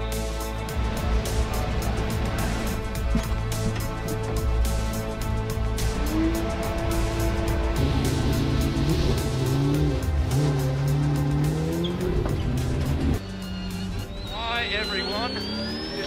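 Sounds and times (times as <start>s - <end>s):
music with steady beat: 0.0s - 15.4s
race car engine revving: 5.8s - 16.0s
high whine rising in pitch: 13.2s - 16.0s.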